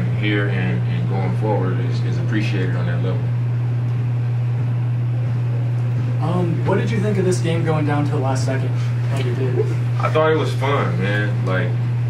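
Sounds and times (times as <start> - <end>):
low-pitched hum: 0.0 - 12.0.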